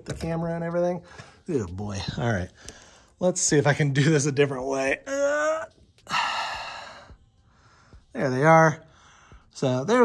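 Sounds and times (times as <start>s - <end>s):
man sighing: 5.1s - 7.2s.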